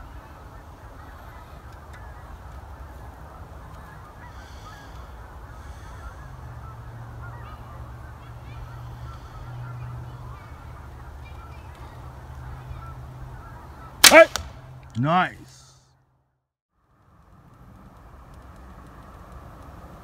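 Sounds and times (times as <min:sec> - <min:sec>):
geese honking: 0:00.0 - 0:14.5.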